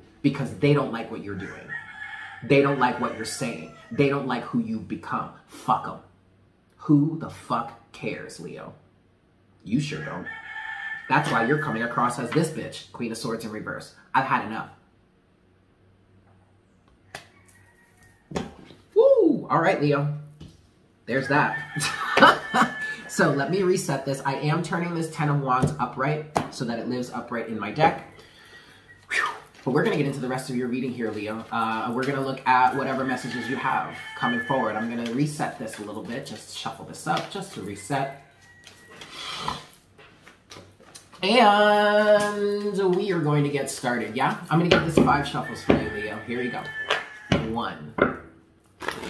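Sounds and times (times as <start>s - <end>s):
man exclaiming: 19.0s - 19.8s.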